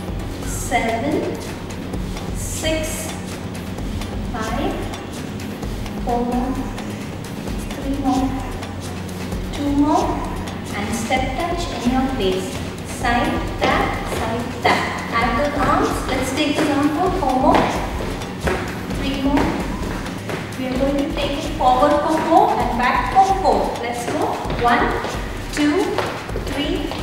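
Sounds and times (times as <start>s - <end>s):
woman talking: 0.5s - 1.4s, 2.4s - 3.1s, 4.3s - 4.9s, 6.0s - 6.8s, 7.7s - 8.6s, 9.5s - 17.9s, 18.9s - 19.8s, 20.6s - 27.0s
footsteps on wooden floor: 9.3s - 27.0s.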